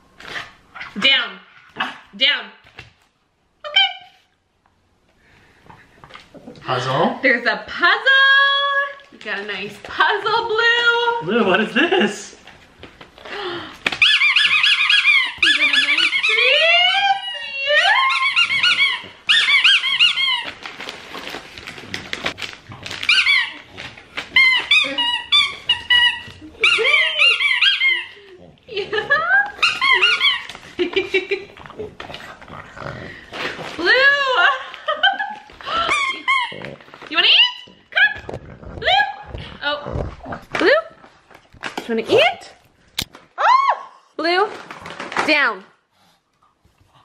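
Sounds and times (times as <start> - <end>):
puppy whining: 14.0 - 20.8, 22.8 - 30.7, 35.6 - 39.7.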